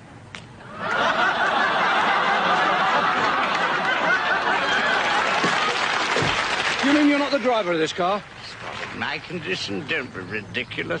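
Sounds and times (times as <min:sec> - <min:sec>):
audience laughing: 0:00.6 - 0:07.0
audience applauding: 0:00.9 - 0:09.2.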